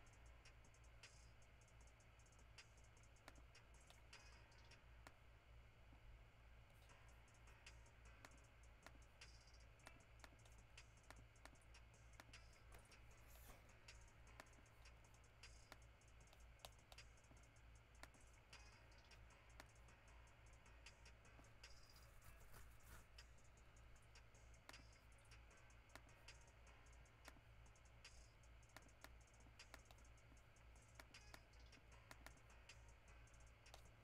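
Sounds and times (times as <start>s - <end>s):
low steady hum: 0.0s - 34.0s
computer mouse clicks: 28.0s - 32.9s.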